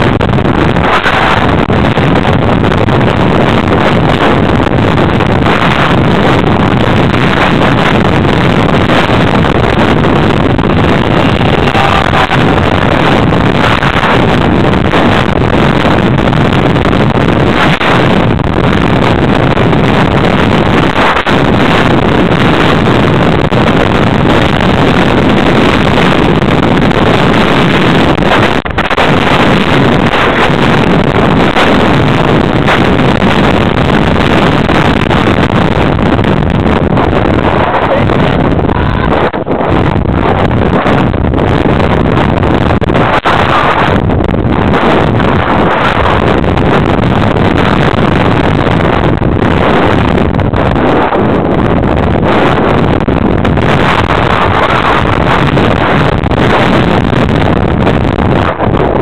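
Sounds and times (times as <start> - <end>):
wind rush on microphone: 0.0 - 59.0.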